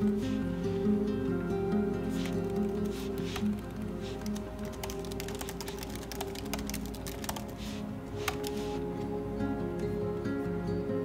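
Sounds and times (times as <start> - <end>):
soft background music: 0.0 - 11.0
laptop keyboard typing: 2.1 - 8.8.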